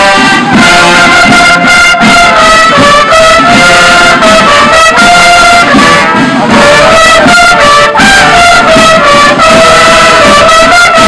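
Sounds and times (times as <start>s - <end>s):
marching band trumpets: 0.0s - 11.0s.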